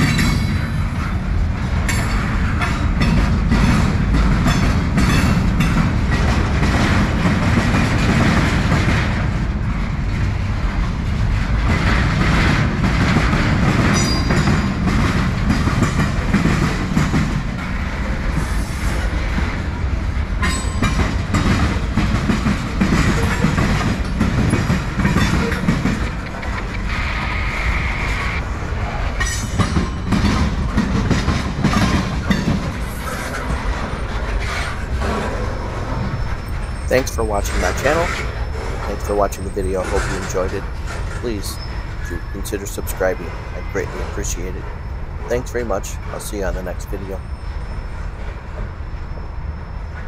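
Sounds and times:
wheels clacking over rail joints: 0.0 - 27.2, 28.6 - 50.0
freight train wheels rumbling: 0.0 - 50.0
high wheel squeal: 32.3 - 46.2, 47.1 - 50.0.

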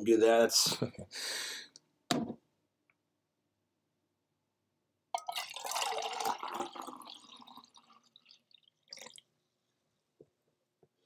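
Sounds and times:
liquid splashing in glass jar: 5.2 - 9.3.

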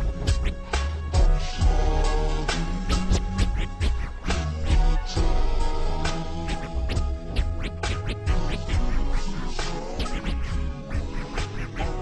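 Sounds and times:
slowed hip hop beat: 0.0 - 12.0
turntable scratches: 0.0 - 12.0.

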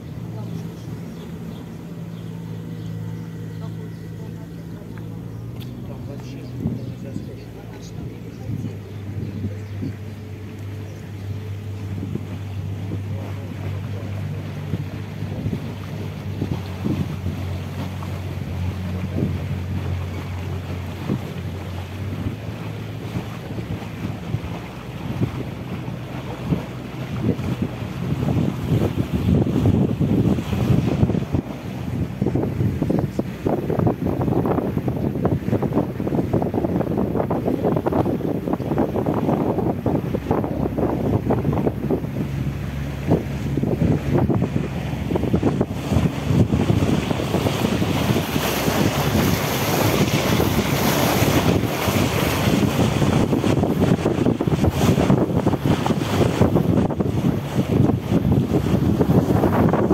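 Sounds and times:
boat engine humming: 0.0 - 59.9
water splashing past hull: 0.0 - 59.9
wind buffeting microphone: 0.0 - 59.9.

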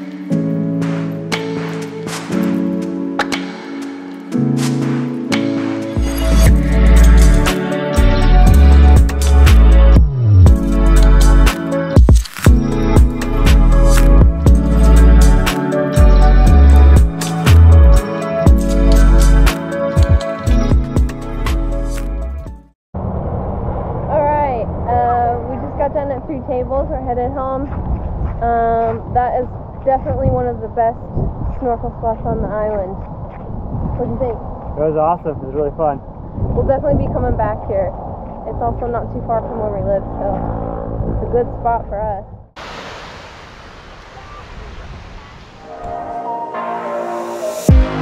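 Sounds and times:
electronic music: 0.0 - 22.7, 45.6 - 48.0
wind buffeting microphone: 24.3 - 42.4
surf washing onto beach: 42.6 - 45.7.

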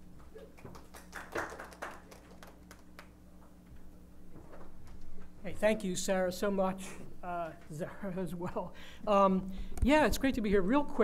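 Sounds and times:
faint room hum: 0.0 - 11.0
audience clapping: 0.5 - 3.2.

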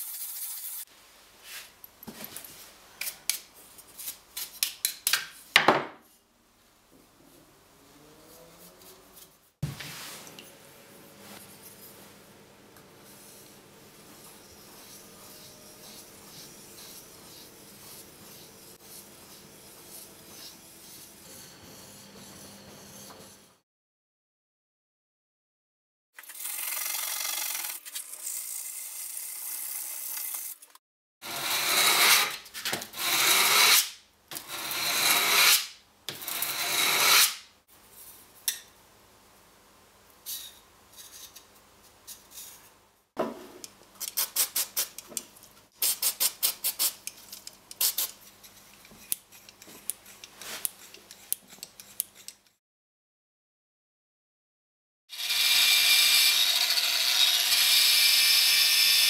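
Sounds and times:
steel blade scraping on abrasive: 14.2 - 23.6, 33.0 - 37.4.

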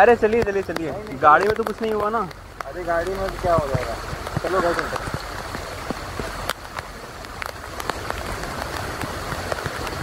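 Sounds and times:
drops ticking close by: 0.0 - 10.0
rain on wet pavement: 0.0 - 10.0.

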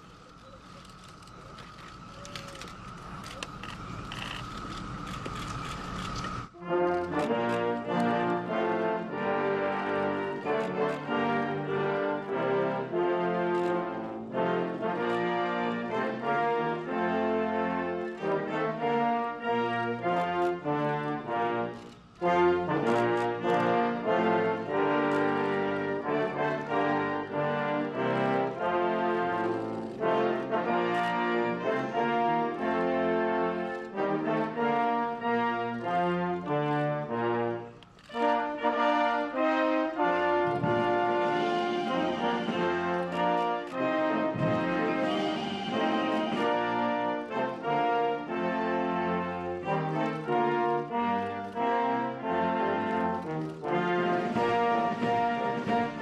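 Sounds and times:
brass band playing: 6.5 - 56.0.

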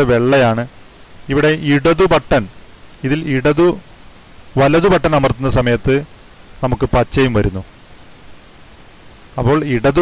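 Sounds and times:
background hiss: 0.0 - 10.0
person narrating: 1.3 - 3.9, 4.6 - 7.7.

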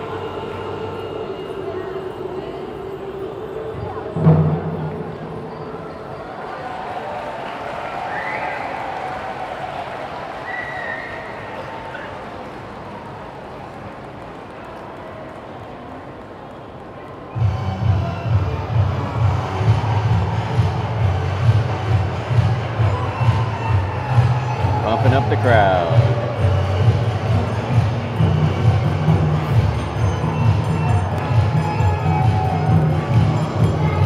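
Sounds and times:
crowd chatter: 0.0 - 34.0
festival music with drum beat: 17.4 - 34.0.

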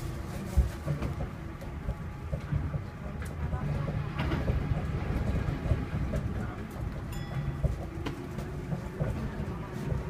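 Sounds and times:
monorail car rumbling: 0.0 - 10.0.

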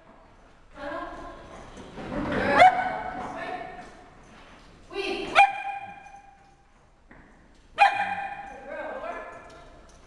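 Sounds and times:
dog barking: 5.4 - 6.0, 7.8 - 8.5.

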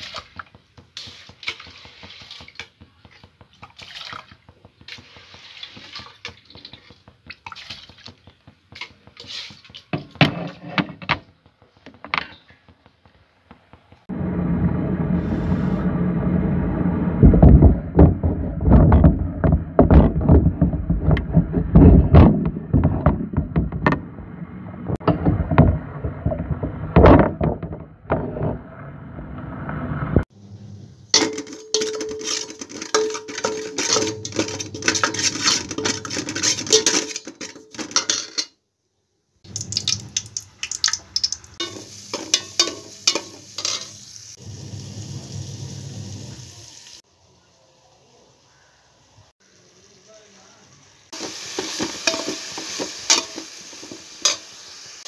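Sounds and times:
water running into a pot: 0.0 - 8.1, 39.4 - 47.1, 49.5 - 55.0
metal clatter: 31.1 - 38.6
steel vessels clinking: 31.1 - 38.6, 39.5 - 44.0, 51.2 - 54.5
high hiss: 43.0 - 55.0.

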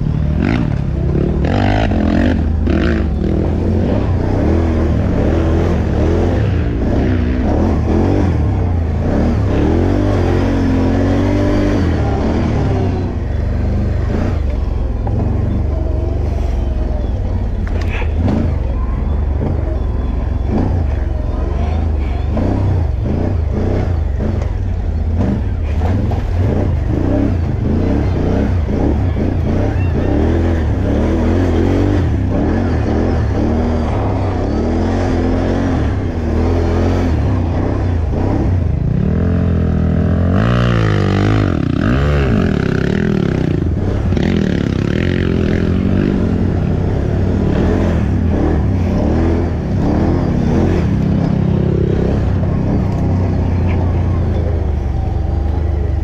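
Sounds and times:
atv engine revving: 0.0 - 56.0
constant low rumble: 0.0 - 56.0.

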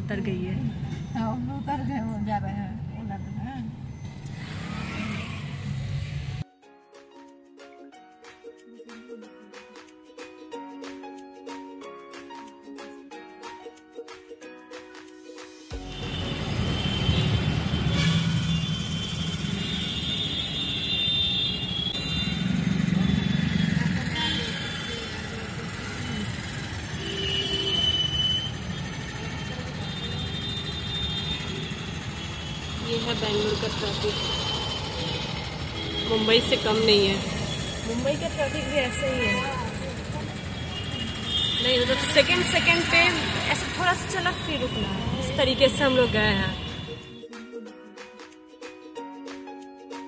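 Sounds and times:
woman's voice: 0.0 - 3.8, 32.8 - 34.4, 36.0 - 40.4, 41.6 - 46.6.

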